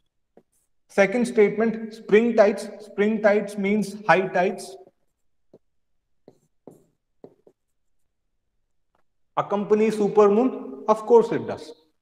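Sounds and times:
writing scratches on touchscreen: 0:00.0 - 0:00.9, 0:04.8 - 0:09.1.

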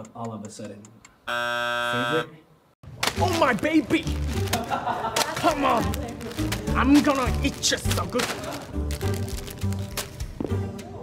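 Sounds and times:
electronic timer buzzer: 0:01.3 - 0:02.3.

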